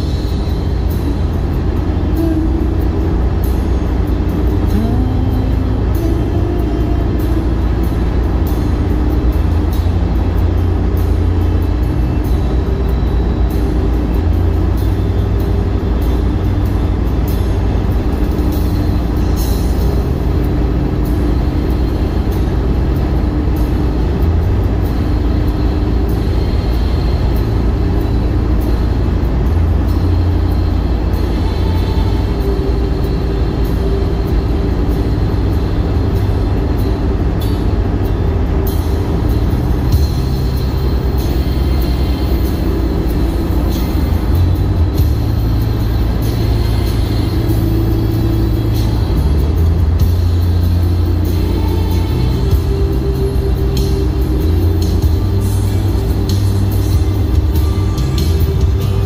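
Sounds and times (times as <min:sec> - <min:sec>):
road and engine rumble in car: 0:00.0 - 0:59.0
soft music: 0:00.0 - 0:59.0.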